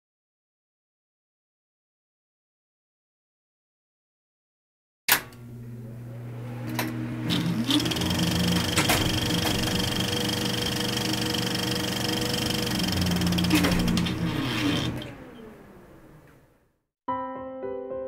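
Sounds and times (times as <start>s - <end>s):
steady hum: 5.2s - 16.4s
film projector clatter: 6.7s - 15.3s.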